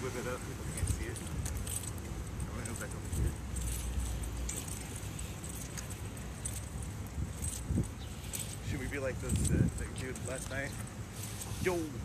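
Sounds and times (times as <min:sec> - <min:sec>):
light jingling: 0:00.0 - 0:12.0.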